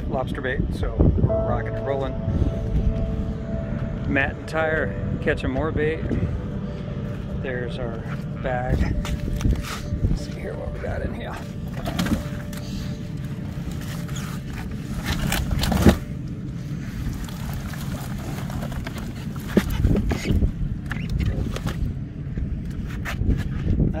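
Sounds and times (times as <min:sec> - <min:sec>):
low rumble: 0:00.0 - 0:24.0.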